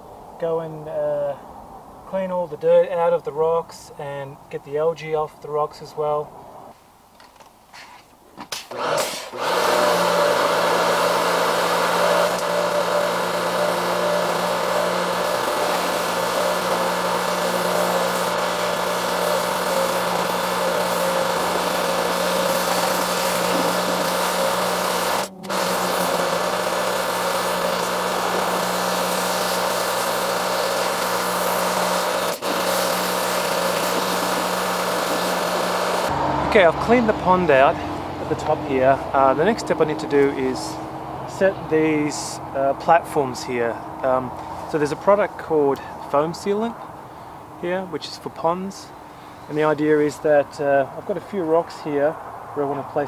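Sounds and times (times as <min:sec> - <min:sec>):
high-pressure water spray hissing: 0:08.7 - 0:36.1
pressure washer motor hum: 0:08.7 - 0:41.0.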